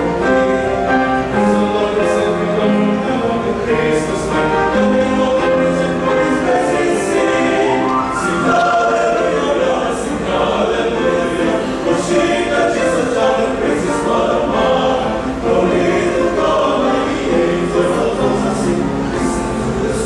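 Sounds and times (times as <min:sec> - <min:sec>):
male choir singing: 0:00.0 - 0:20.0.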